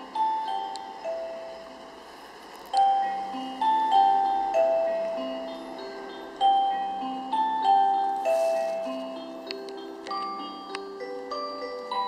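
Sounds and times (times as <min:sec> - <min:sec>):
clock chime bell melody: 0:00.0 - 0:12.0.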